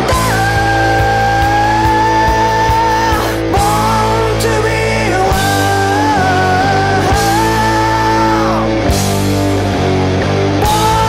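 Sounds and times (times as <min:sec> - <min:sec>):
bass: 0:00.0 - 0:11.0
drums: 0:00.0 - 0:11.0
rock lead guitar note: 0:00.0 - 0:11.0.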